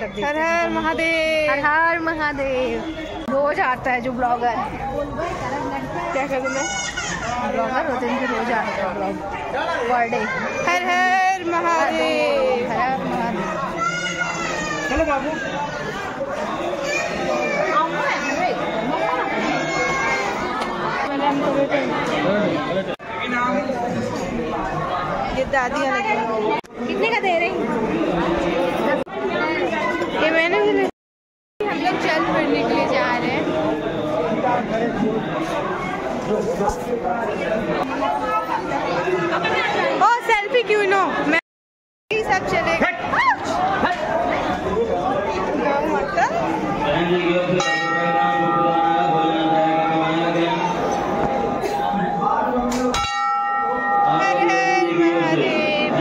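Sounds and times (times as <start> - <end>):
people chattering: 0.0 - 30.9, 31.6 - 41.4, 42.1 - 56.0
brass bell ringing: 47.5 - 50.4, 51.4 - 55.3.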